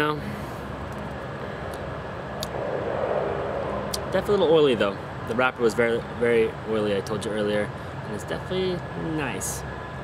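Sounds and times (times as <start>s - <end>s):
outdoor background rumble: 0.0s - 10.0s.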